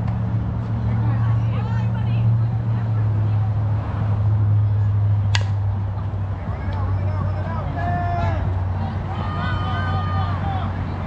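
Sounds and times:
bat cracking a ball: 0:05.3 - 0:05.6.

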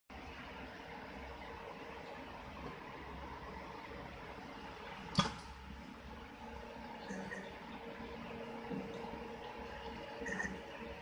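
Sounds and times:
machine humming: 0:00.1 - 0:11.0.

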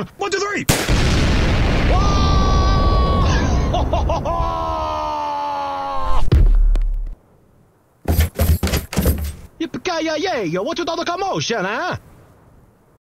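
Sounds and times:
cartoon explosion rumble: 0:00.7 - 0:04.5.

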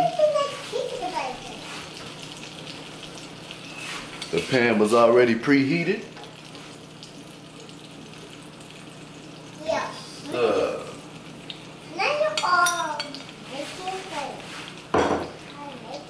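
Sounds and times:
eggs sizzling in a pan: 0:00.0 - 0:16.0.

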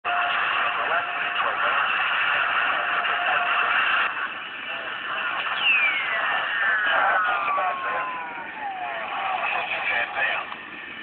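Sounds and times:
voice over radio speaker: 0:00.1 - 0:10.6
radio static and hiss: 0:00.1 - 0:11.0
whistling tone falling in pitch: 0:05.5 - 0:09.0.

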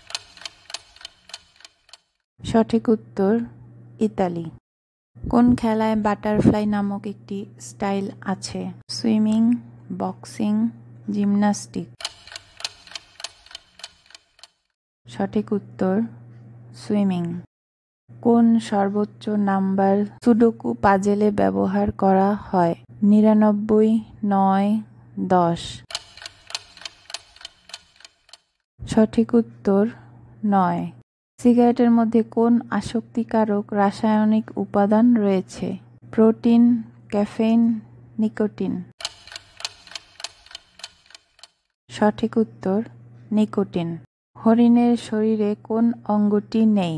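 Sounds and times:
clock ticking: 0:00.0 - 0:02.1, 0:12.0 - 0:14.6, 0:25.9 - 0:28.4, 0:39.0 - 0:41.6.

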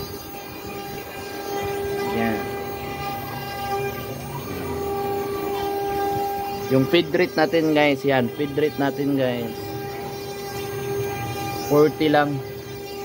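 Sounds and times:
axis motors whining: 0:00.0 - 0:13.0
router spindle high whine: 0:00.0 - 0:13.0.

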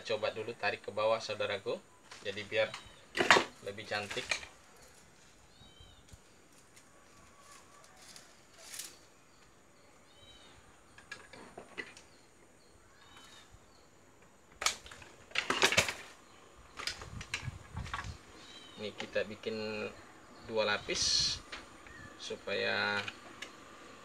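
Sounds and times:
bird chirping: 0:00.0 - 0:15.3, 0:16.0 - 0:24.0
rustling of wire and branches: 0:00.0 - 0:24.0.

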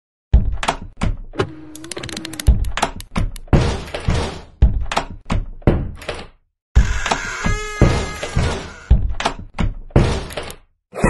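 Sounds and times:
heavy thuds and knocks: 0:02.5 - 0:06.0.

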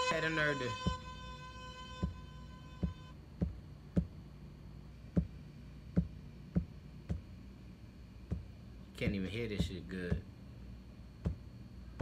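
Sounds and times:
held pitched tone: 0:00.0 - 0:03.2
steady low hum: 0:00.0 - 0:12.0
drum pad knocks: 0:00.7 - 0:01.2, 0:02.0 - 0:04.2, 0:09.5 - 0:10.3.

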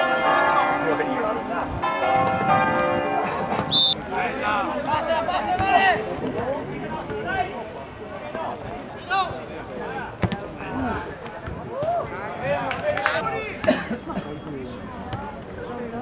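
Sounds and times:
bells ringing: 0:00.0 - 0:03.6
referee's whistle: 0:03.7 - 0:04.0.

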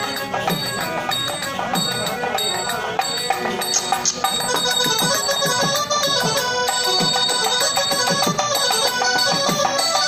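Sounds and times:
keyboard melody of held notes: 0:00.0 - 0:10.0.

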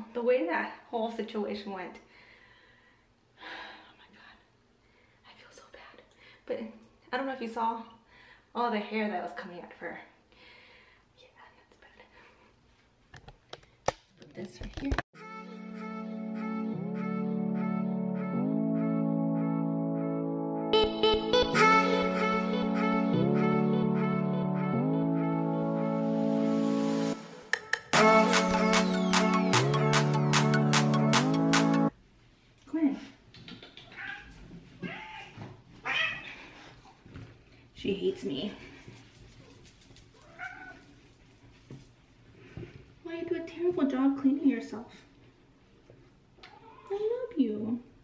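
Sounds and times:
cat meowing: 0:33.8 - 0:36.4, 0:40.2 - 0:40.9, 0:46.4 - 0:47.0.

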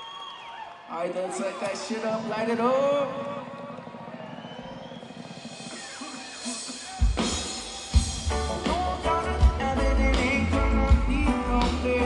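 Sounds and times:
murmur of concert crowd: 0:00.0 - 0:12.0.

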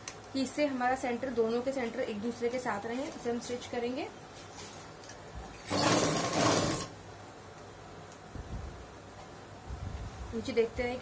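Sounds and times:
sewing machine stitching: 0:05.6 - 0:07.0.

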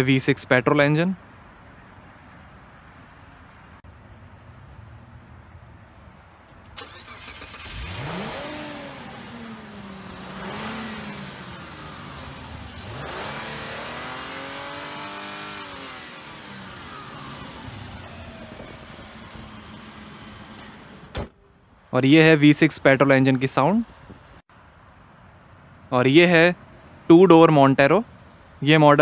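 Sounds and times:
car engine starting and idling: 0:06.5 - 0:21.8
engine revving: 0:06.8 - 0:21.0.

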